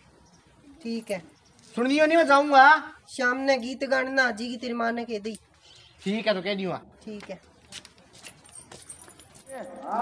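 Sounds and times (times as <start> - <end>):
man speaking: 6.0 - 7.0.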